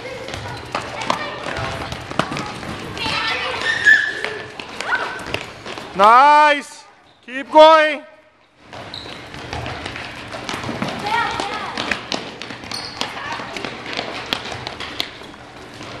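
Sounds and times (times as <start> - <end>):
children's voices: 0.0 - 5.3, 11.0 - 12.0
balls thudding on gym floor: 0.0 - 6.0, 8.6 - 16.0.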